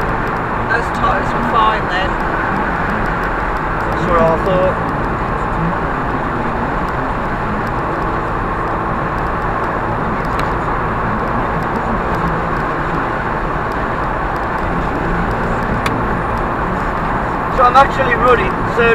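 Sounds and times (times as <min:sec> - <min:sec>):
car engine droning: 0:00.0 - 0:18.9
tyre and road noise: 0:00.0 - 0:18.9.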